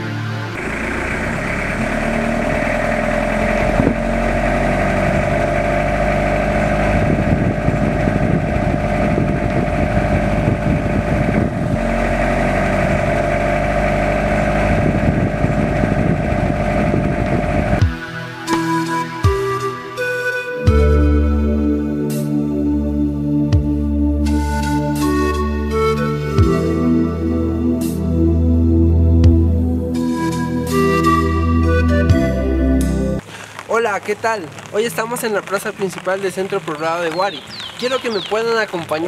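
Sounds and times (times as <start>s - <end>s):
music: 0.0s - 0.6s, 17.8s - 33.2s
vehicle engine running: 0.0s - 19.7s, 33.2s - 39.0s.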